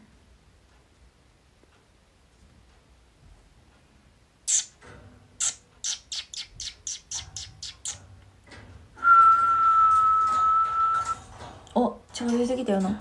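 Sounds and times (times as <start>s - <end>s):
high squeaky clicks: 4.4s - 11.3s
person whistling: 9.0s - 11.2s.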